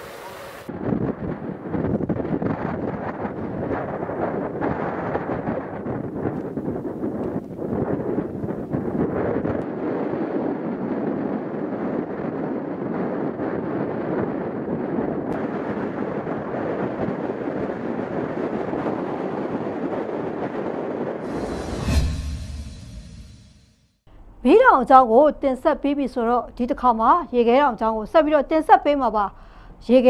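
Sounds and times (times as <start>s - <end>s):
wind on microphone: 0.0s - 23.6s
whoosh: 21.2s - 23.9s.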